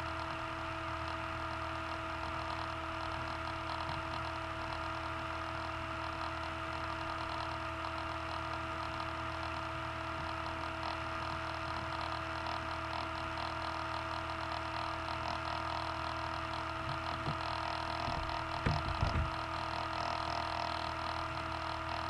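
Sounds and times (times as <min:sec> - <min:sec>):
steady electrical hum: 0:00.0 - 0:22.0.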